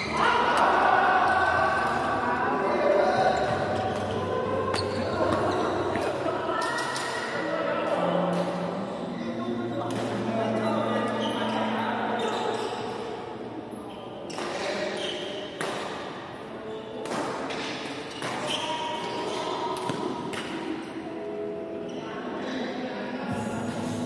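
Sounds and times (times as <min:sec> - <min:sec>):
players chattering: 0:00.0 - 0:14.4, 0:18.4 - 0:24.0
rackets hitting shuttlecock: 0:15.6 - 0:16.1, 0:17.0 - 0:20.8.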